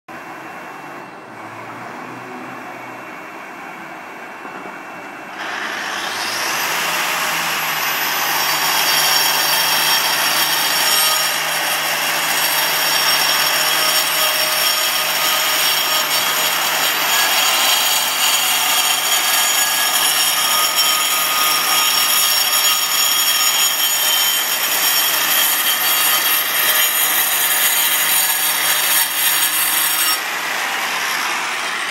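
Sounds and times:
grinder cutting concrete: 5.4s - 31.9s.

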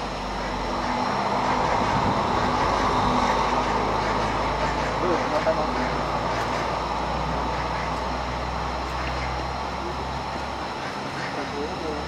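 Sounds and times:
faint voices: 3.2s - 12.0s.

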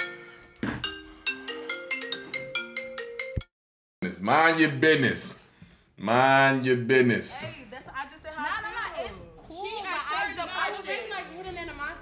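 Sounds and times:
marimba-like phone ringtone: 0.0s - 3.4s.

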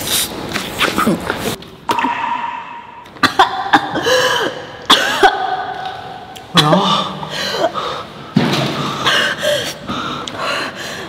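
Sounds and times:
woman coughing: 3.2s - 5.6s.

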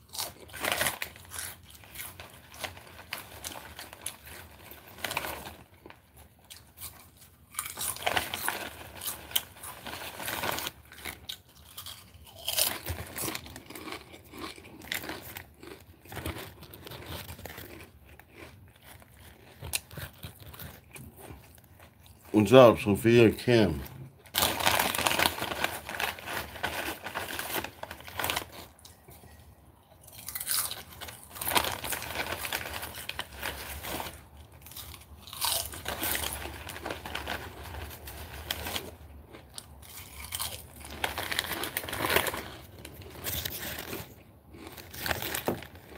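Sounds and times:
potato chips crunching: 0.0s - 45.9s.

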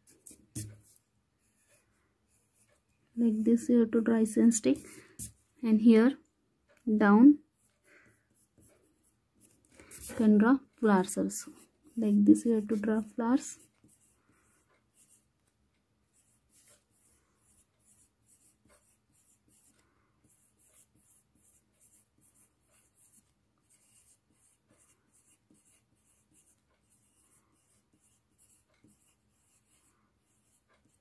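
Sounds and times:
pencil scratching on paper: 0.0s - 5.4s, 7.4s - 31.0s.

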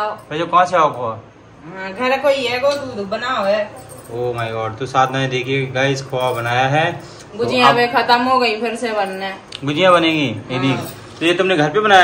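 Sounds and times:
light metallic jingle: 2.5s - 11.4s
voices talking: 7.3s - 11.2s.

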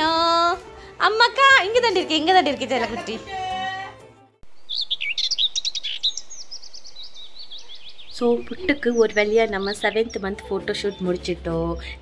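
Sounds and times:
birds chirping: 4.4s - 12.0s.

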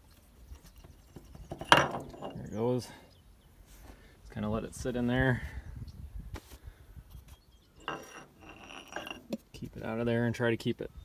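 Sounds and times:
metal scraping and clinking: 0.5s - 2.6s, 7.8s - 9.4s.

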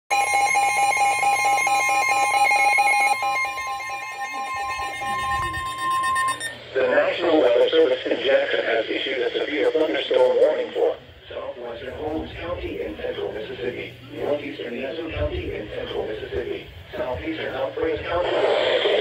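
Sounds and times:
pulsing electronic alarm beep: 0.1s - 6.7s
steady high warning tone: 0.1s - 7.9s, 9.1s - 18.2s.

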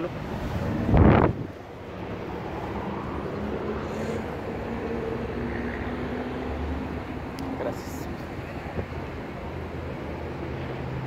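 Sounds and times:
wind on microphone: 0.3s - 5.8s.

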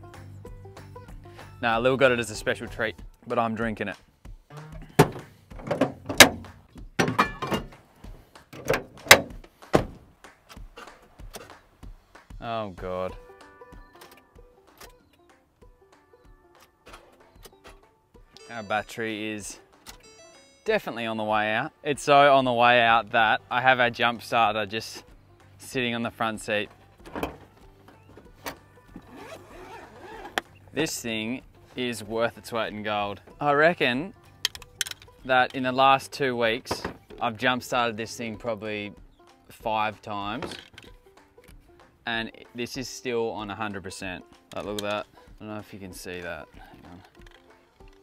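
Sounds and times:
latch clicks: 4.8s - 7.8s, 8.6s - 10.0s, 27.0s - 29.1s, 34.4s - 35.1s
vehicle doors thunking shut: 4.8s - 7.8s, 8.6s - 10.1s, 27.0s - 29.1s.

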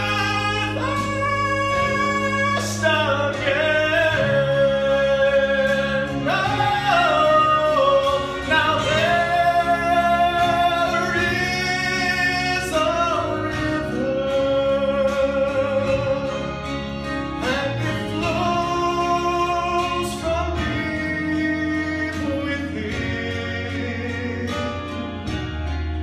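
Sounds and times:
man singing gospel with vibrato: 0.0s - 25.8s
instrumental accompaniment: 0.0s - 26.0s.

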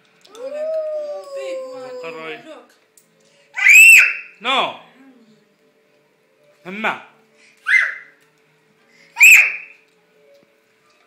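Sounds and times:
toddler's long held aah: 0.3s - 2.4s
toddler's high-pitched squeal: 3.6s - 4.4s, 7.6s - 8.1s, 9.2s - 9.8s.

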